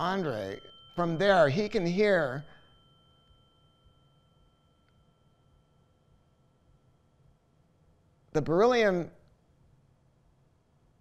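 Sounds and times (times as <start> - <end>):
tuning fork ringing: 0.0 - 8.4.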